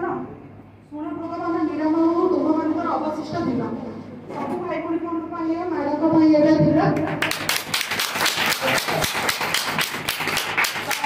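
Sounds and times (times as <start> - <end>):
small group clapping: 7.0 - 11.0.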